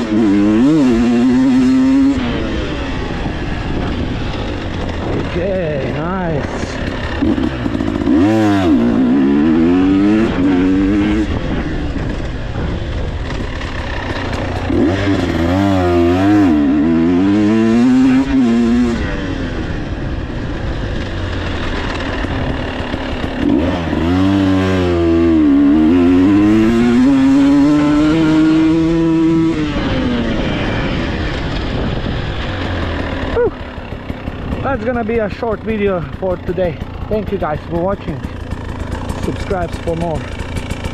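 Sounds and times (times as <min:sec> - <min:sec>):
motorcycle engine revving: 0:00.0 - 0:40.9.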